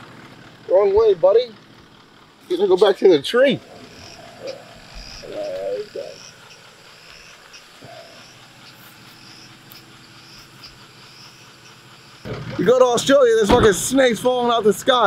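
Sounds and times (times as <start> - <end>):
insects chirping: 2.0 - 15.0
steady hiss: 3.3 - 13.2.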